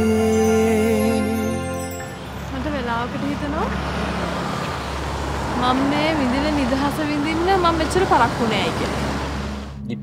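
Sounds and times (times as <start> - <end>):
road traffic noise: 0.0 - 10.0.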